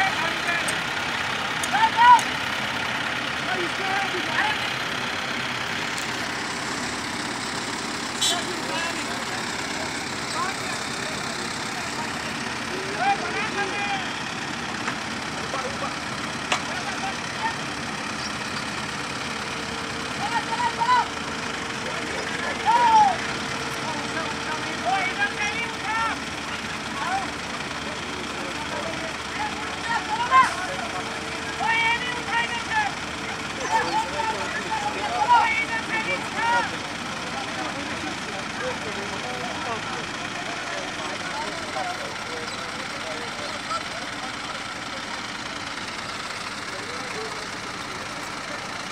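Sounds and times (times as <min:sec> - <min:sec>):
men calling out: 0:00.0 - 0:05.6, 0:07.4 - 0:48.8
crane diesel engines running: 0:00.0 - 0:48.9.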